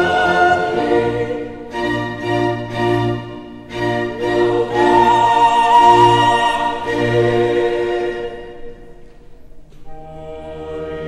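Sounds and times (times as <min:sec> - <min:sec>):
orchestra playing: 0:00.0 - 0:08.9
choir singing held chords: 0:00.0 - 0:09.1, 0:09.9 - 0:11.0.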